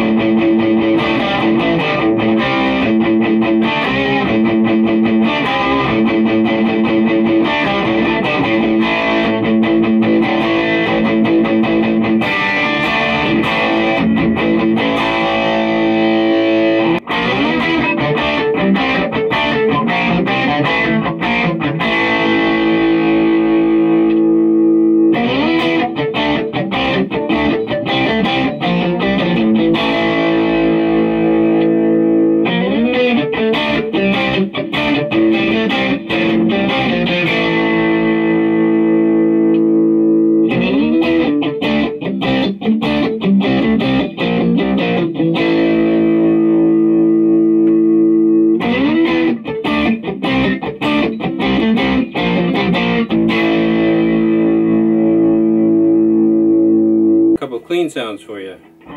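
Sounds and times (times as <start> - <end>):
distorted electric guitar chords: 0.0 - 57.4, 58.6 - 58.9.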